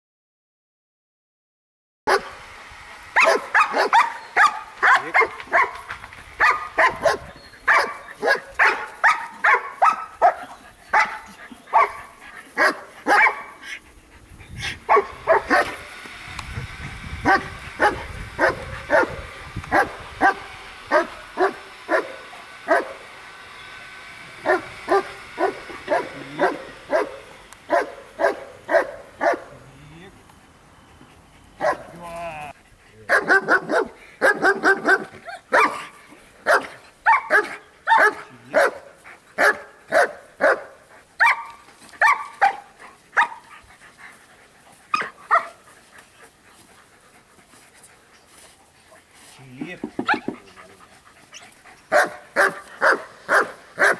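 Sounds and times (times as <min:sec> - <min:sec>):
dogs barking sharply: 0:02.1 - 0:02.4, 0:03.2 - 0:13.8, 0:14.6 - 0:15.9, 0:17.2 - 0:23.1, 0:24.4 - 0:29.6, 0:31.6 - 0:32.0, 0:33.1 - 0:43.6, 0:44.9 - 0:45.6, 0:49.8 - 0:50.6, 0:51.3 - 0:53.9.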